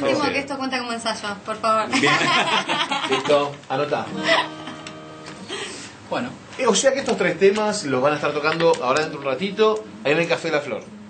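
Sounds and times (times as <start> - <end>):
person laughing: 1.9 - 3.5
acoustic guitar chord ringing: 4.0 - 5.6.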